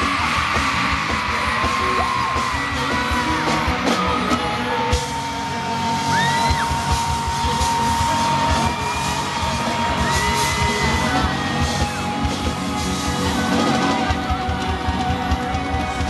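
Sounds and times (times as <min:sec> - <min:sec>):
crowd yelling: 0:00.0 - 0:16.0
live pop band music: 0:00.0 - 0:16.0.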